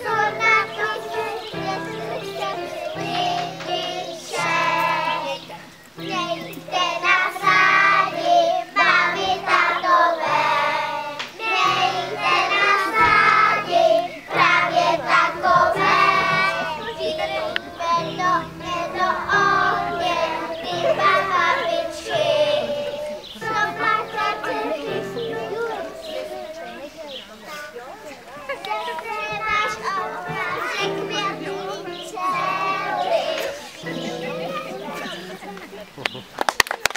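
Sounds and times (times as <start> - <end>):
children singing in unison: 0.0 - 26.9, 28.9 - 35.4.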